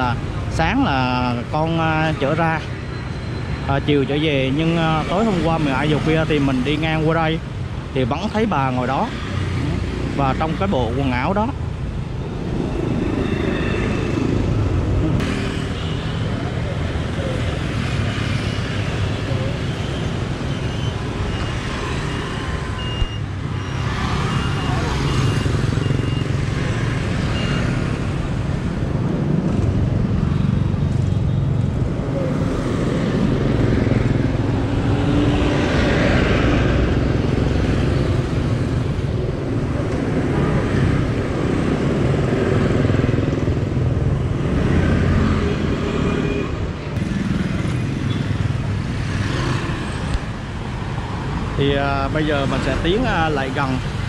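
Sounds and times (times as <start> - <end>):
motorbike engines passing: 0.0 - 54.0
low traffic rumble: 27.8 - 54.0.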